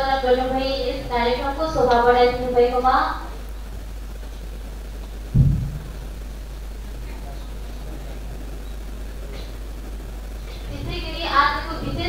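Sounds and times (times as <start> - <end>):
low hum: 0.0 - 12.0
dull low thump: 5.3 - 6.0.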